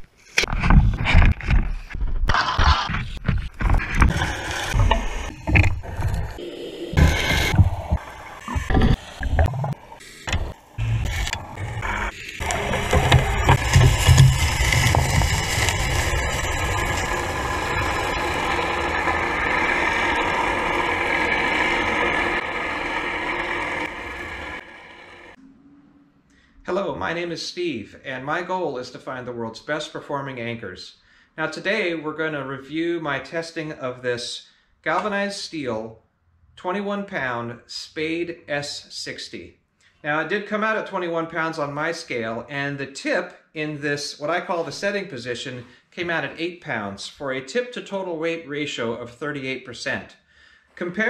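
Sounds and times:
underwater engine and propeller drone: 4.0s - 25.4s.

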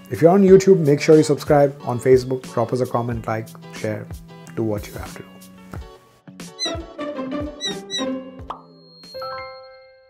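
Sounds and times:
playful logo jingle: 6.6s - 10.0s.

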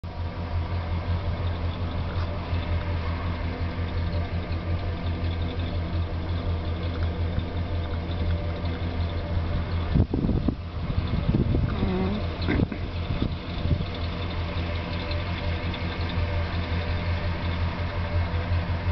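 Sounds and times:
van engine idling: 0.0s - 18.9s.

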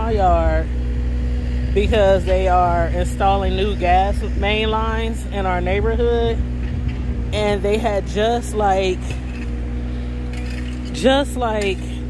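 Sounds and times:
engine droning: 0.0s - 12.0s.

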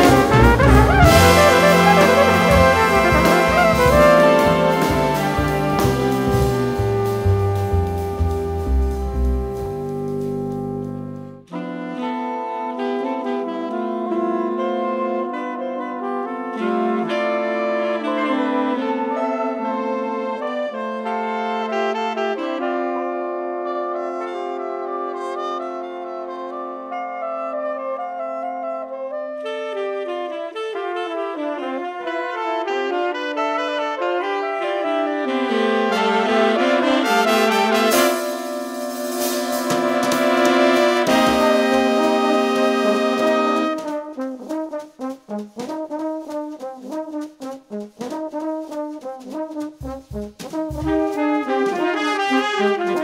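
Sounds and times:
brass and saxophone ensemble music: 0.0s - 53.0s.

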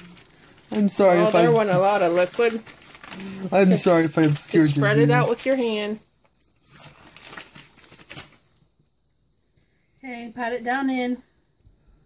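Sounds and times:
crinkling rustling handling: 0.0s - 8.6s
sharp crackle: 0.0s - 8.6s.

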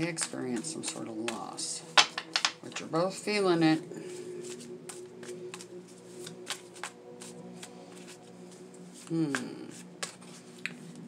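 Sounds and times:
cards being shuffled: 0.0s - 2.9s, 4.4s - 11.0s.

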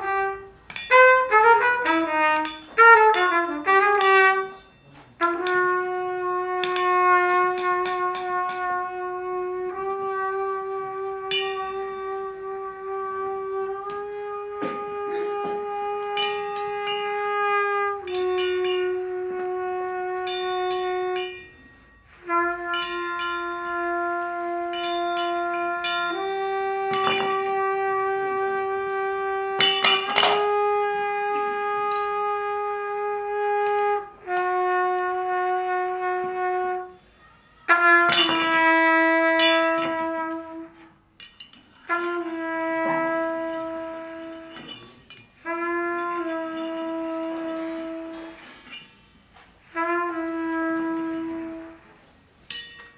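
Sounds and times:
small cymbals struck: 0.0s - 10.5s, 11.1s - 32.3s, 33.3s - 50.0s, 52.5s - 52.9s
trumpet long held notes: 0.0s - 41.0s, 41.8s - 52.3s.

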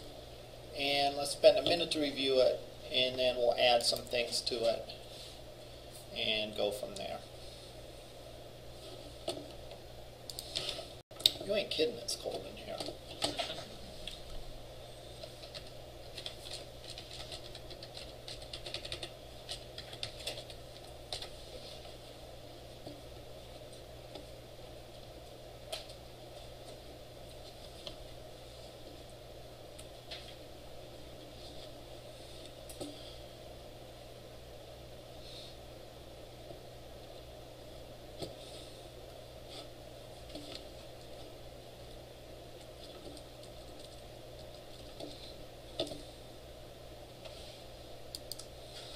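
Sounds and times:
low room hum: 0.0s - 48.9s
keyboard typing and clicks: 15.4s - 21.3s.

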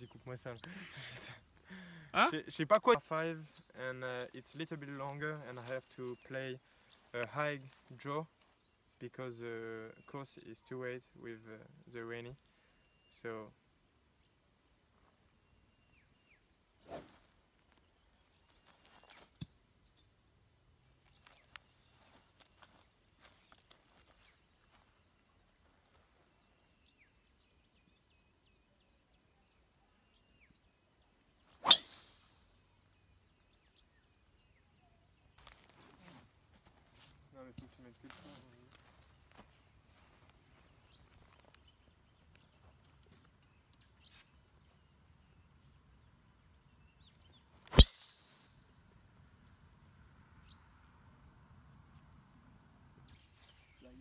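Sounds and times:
golf club striking ball: 31.6s - 32.2s, 47.7s - 48.3s.

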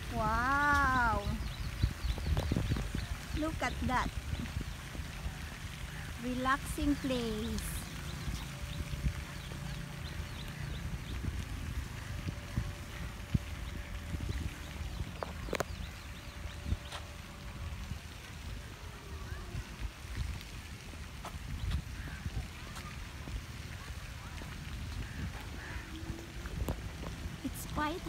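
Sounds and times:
wind rumbling on microphone: 0.0s - 28.0s.

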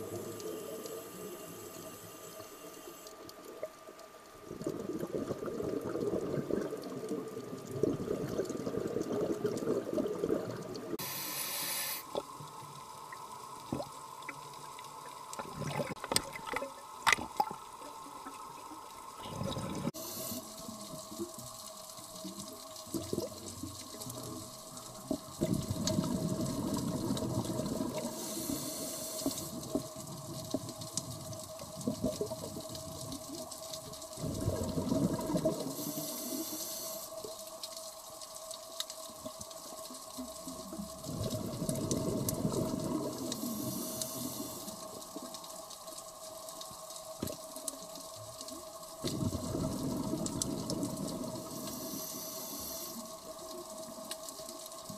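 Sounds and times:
regulator inhalation hiss: 0.0s - 3.3s, 11.0s - 12.2s, 19.8s - 20.9s, 28.0s - 29.8s, 35.6s - 37.3s, 43.2s - 44.9s, 51.4s - 53.4s
faint hum: 0.0s - 9.1s, 9.8s - 22.9s, 23.8s - 31.4s, 33.6s - 54.8s
exhaled bubbles rumbling: 3.4s - 11.0s, 12.1s - 36.4s, 40.0s - 45.5s, 47.2s - 54.9s.

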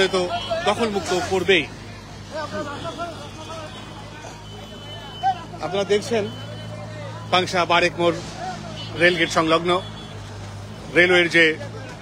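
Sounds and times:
people talking: 0.0s - 10.2s, 10.8s - 12.0s
vehicle engines humming: 0.0s - 12.0s.

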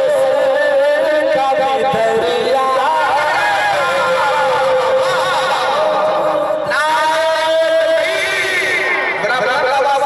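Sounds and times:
man singing through loudspeakers: 0.0s - 10.0s.

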